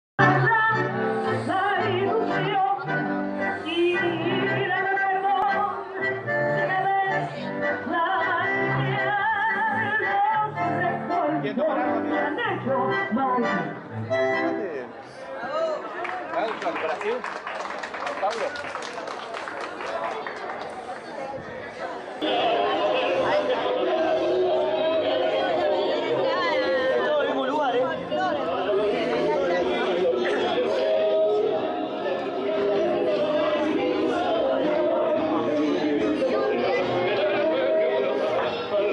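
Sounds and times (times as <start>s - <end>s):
tango music on bandoneon: 0.2s - 15.0s, 22.2s - 38.9s
chatter of many people talking: 0.2s - 38.9s.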